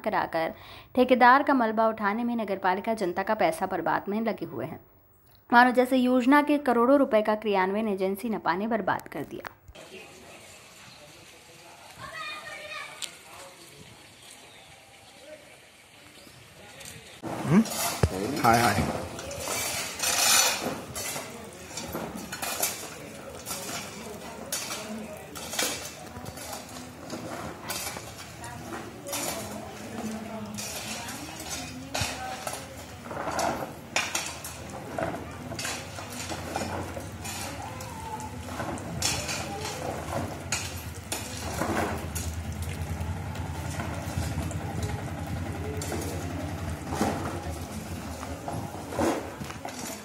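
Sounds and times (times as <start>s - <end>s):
engine idling: 41.4s - 48.2s.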